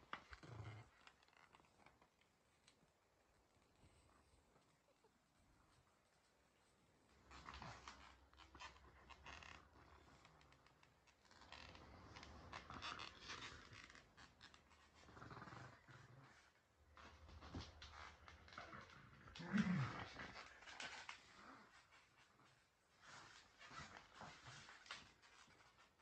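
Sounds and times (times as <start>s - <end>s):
dog growling: 18.6s - 21.7s.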